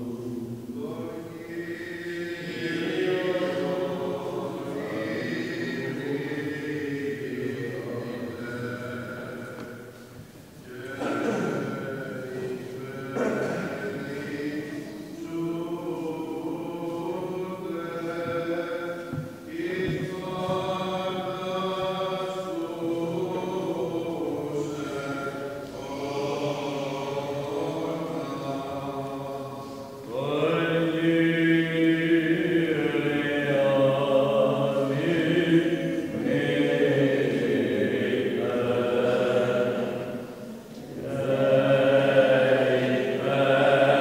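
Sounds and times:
unaccompanied voices chanting: 0:00.0 - 0:44.0.

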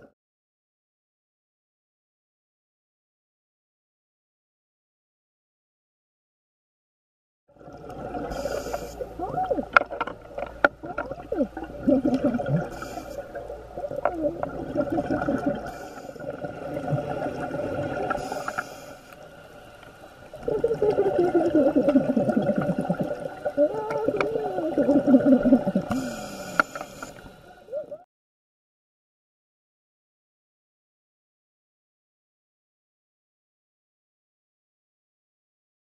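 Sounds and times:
whale song moans and whoops: 0:20.4 - 0:26.0, 0:27.7 - 0:28.1.

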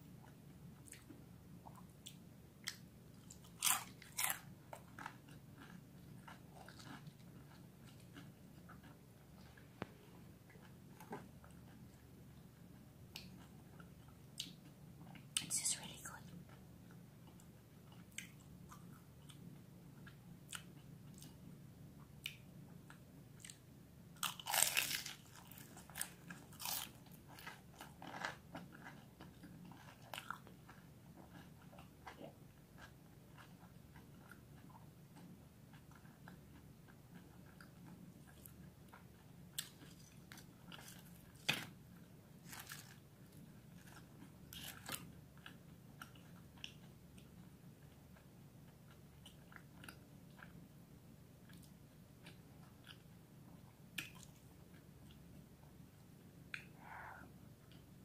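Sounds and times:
crackling chewing: 0:00.1 - 0:21.5, 0:22.1 - 0:50.8
crispy pastry crunching: 0:01.8 - 0:09.6, 0:24.2 - 0:36.4, 0:38.3 - 0:47.3.

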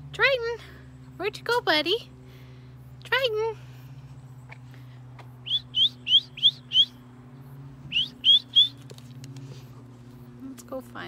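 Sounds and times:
person whistling rising whistles: 0:07.9 - 0:08.8.

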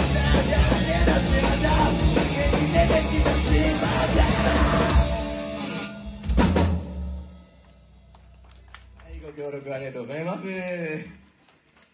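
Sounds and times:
live rock band playing: 0:00.0 - 0:07.4.

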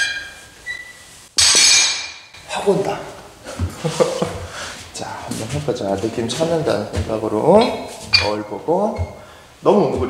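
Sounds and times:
metal bars clanging on floor: 0:01.4 - 0:02.3, 0:08.1 - 0:09.2
weight plates clinking: 0:01.4 - 0:02.3, 0:07.6 - 0:09.2.

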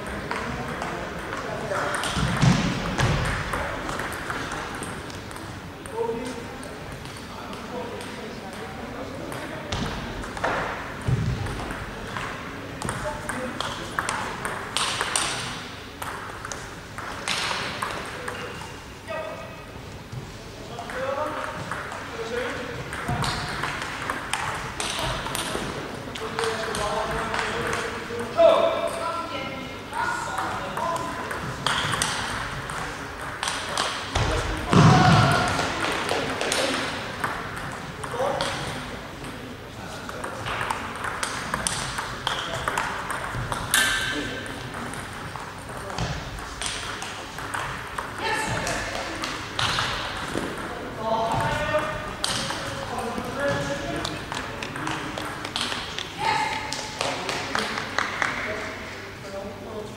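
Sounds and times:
voices in a hall: 0:00.0 - 0:59.9
table tennis ball clicking: 0:16.0 - 0:18.6, 0:40.1 - 0:50.7.

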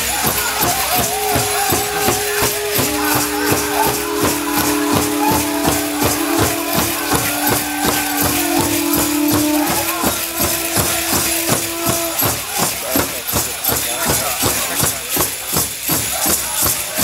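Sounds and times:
big drum steady beat: 0:00.0 - 0:17.0
jingles and bells rattling: 0:00.0 - 0:17.0
voices singing long notes: 0:00.6 - 0:12.6.

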